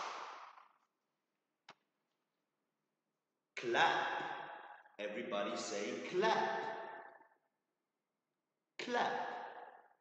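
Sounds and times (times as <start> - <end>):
hand clap: 0.0 - 0.9.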